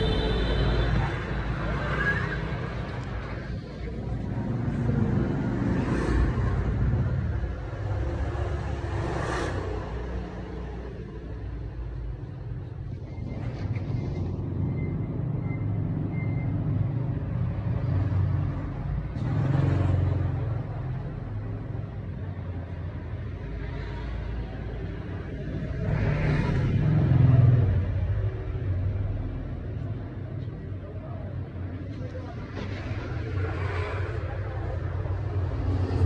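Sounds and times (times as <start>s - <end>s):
road traffic rumble: 0.0s - 36.0s
vehicles passing: 0.0s - 36.0s.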